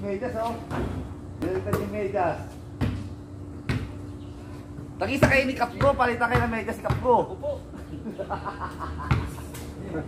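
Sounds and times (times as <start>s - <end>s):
basketball bouncing on concrete: 0.7s - 2.1s, 2.7s - 4.0s, 5.0s - 7.3s, 9.1s - 9.4s.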